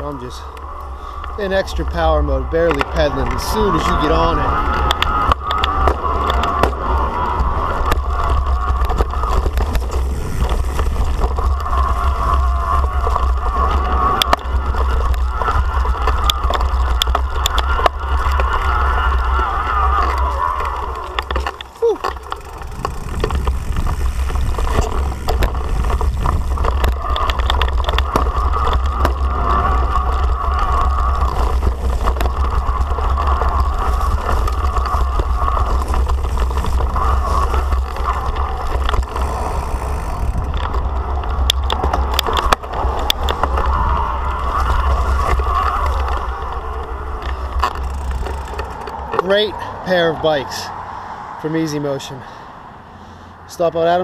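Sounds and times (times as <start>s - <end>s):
electric bike motor whining: 0.0s - 49.4s
wind rushing over microphone: 0.0s - 52.9s
knobby tyres rolling: 0.0s - 54.0s.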